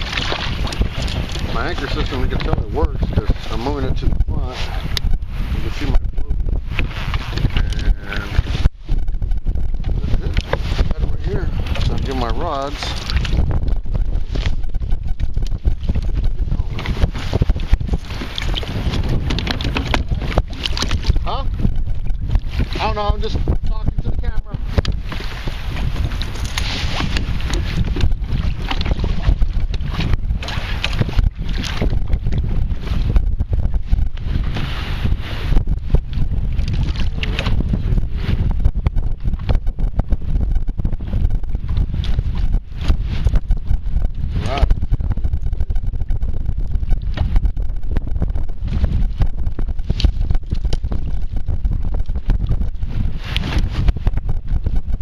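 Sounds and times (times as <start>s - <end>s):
choppy water: 0.0s - 55.0s
wind buffeting microphone: 0.0s - 55.0s.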